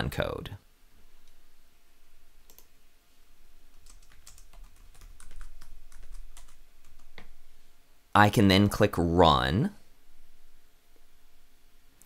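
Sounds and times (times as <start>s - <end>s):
computer keyboard typing: 2.5s - 2.7s, 3.7s - 7.3s.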